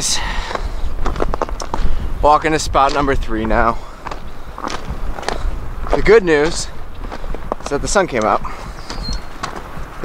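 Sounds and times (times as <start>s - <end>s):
footsteps outdoors: 0.0s - 10.0s.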